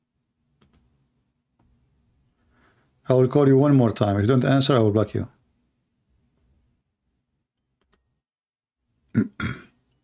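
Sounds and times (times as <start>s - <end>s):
man clearing his throat: 9.1s - 9.8s.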